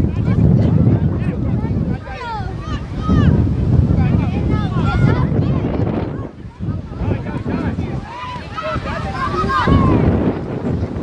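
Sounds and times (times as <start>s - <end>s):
wind buffeting microphone: 0.0s - 11.0s
children shouting: 8.0s - 10.2s.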